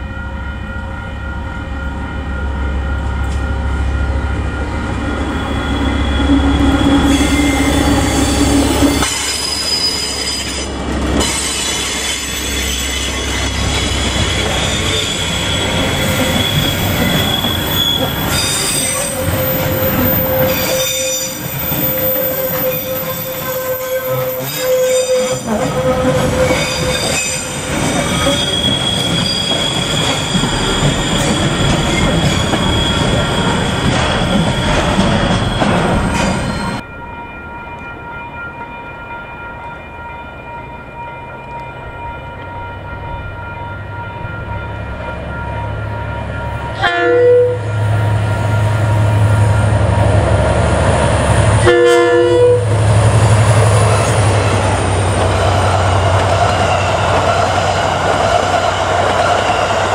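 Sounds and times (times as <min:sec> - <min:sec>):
diesel locomotive engine rumbling: 0:00.0 - 0:59.9
train wheels squealing: 0:03.0 - 0:36.8.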